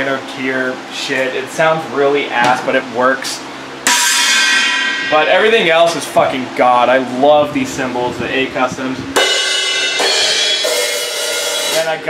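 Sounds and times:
cymbals struck with drumstick: 0:03.8 - 0:06.2, 0:09.2 - 0:12.0.

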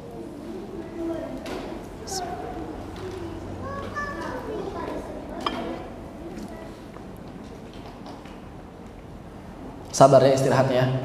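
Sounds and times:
faint chatter of high-pitched voices: 0:00.0 - 0:08.0.

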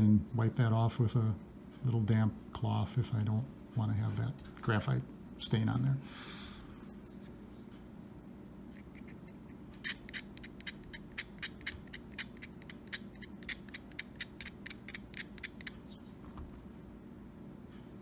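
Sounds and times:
knife blade scraping pencil lead: 0:08.8 - 0:15.8.

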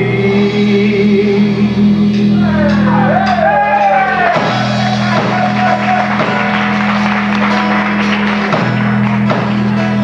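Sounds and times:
bass guitar: 0:00.0 - 0:10.0
electric guitars: 0:00.0 - 0:10.0
drum kit hits: 0:02.0 - 0:10.0.

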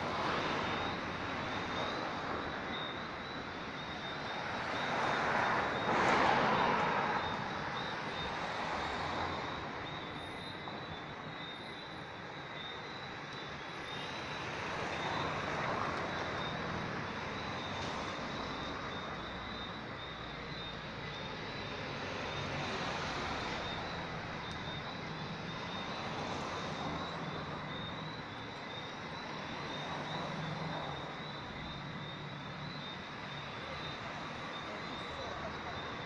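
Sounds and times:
cars driving past: 0:00.0 - 0:11.9, 0:12.6 - 0:36.0.

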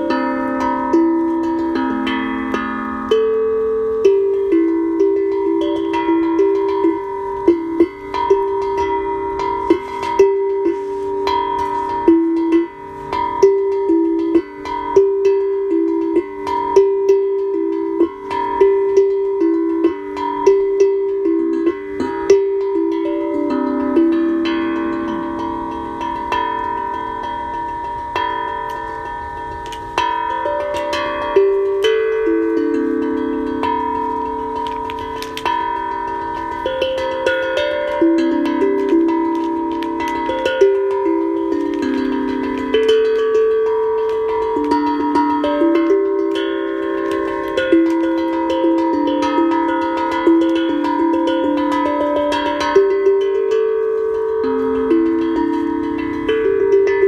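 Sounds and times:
tongue drum notes ringing: 0:00.0 - 0:57.0.

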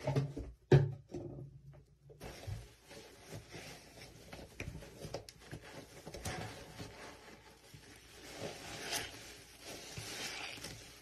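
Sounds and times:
scraping and squishing paste by hand: 0:02.2 - 0:11.0.

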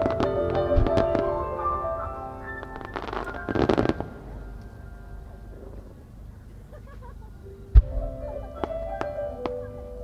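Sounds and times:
fireworks bursting: 0:00.0 - 0:04.5
music with sustained notes: 0:00.0 - 0:06.6, 0:07.2 - 0:10.0.

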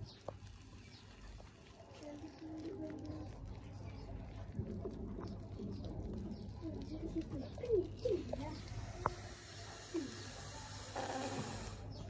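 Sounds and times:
dove cooing: 0:05.2 - 0:12.0.

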